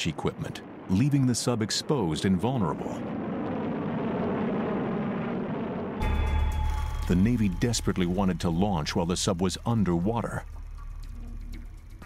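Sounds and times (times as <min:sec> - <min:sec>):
rocket exhaust rushing: 0:02.7 - 0:07.8.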